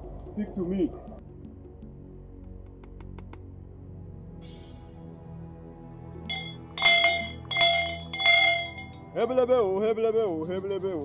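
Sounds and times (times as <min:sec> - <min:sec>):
metal bell struck: 0:06.3 - 0:09.3.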